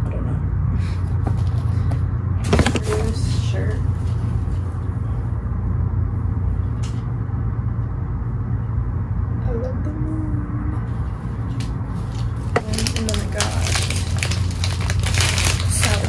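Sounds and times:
low hum and rumble: 0.0 - 16.0
soft rustles: 1.1 - 5.2.

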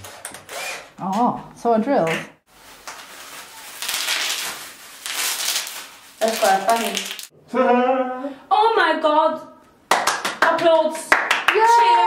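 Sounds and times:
plastic bag rustling and crinkling: 2.5 - 7.3.

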